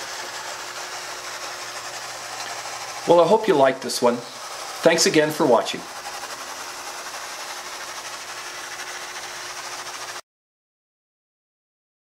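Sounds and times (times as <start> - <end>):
mechanical whir: 0.0 - 10.2.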